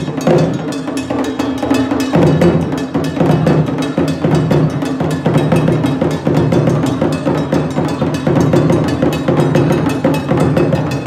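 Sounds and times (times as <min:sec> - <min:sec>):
drum ensemble playing fast rhythm: 0:00.0 - 0:11.0.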